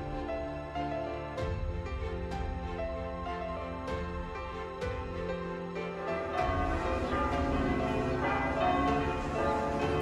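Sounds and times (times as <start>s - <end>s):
bells ringing: 6.0s - 10.0s.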